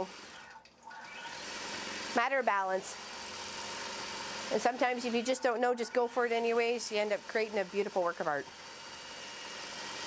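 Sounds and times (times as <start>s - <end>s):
quilting machine whirring hum: 0.0s - 10.0s.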